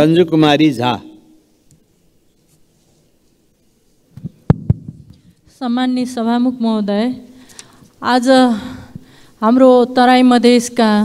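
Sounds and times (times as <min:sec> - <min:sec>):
microphone being handled: 0:01.7 - 0:05.5.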